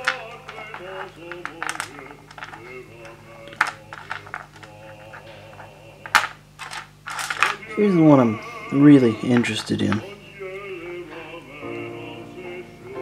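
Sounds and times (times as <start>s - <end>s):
stones clicking on hard tray: 0.0s - 7.7s, 9.3s - 10.1s.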